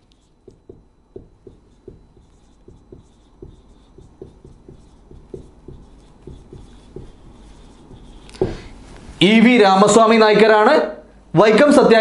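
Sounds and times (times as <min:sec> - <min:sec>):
marker writing on whiteboard: 0:00.0 - 0:08.8.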